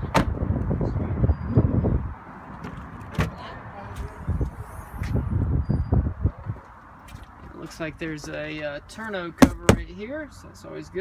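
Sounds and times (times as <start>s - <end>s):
rumbling handling noise: 9.4s - 10.0s.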